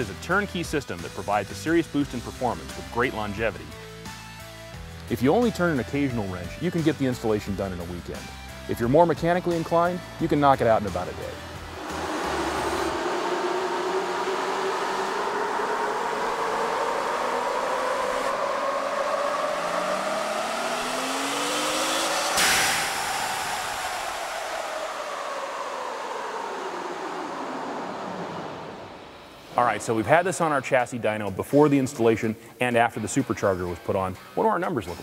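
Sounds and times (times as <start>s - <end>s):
dyno rollers coasting: 10.6s - 31.6s
engine and supercharger whine: 10.8s - 31.0s
rush of air: 11.4s - 30.6s.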